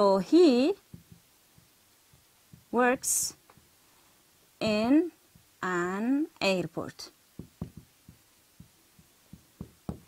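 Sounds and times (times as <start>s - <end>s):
marker writing on a whiteboard: 4.6s - 5.9s, 7.4s - 10.0s.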